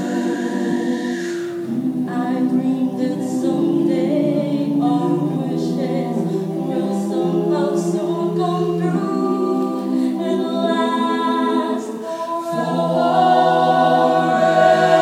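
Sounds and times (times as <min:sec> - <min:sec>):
group singing a cappella: 0:00.0 - 0:15.0.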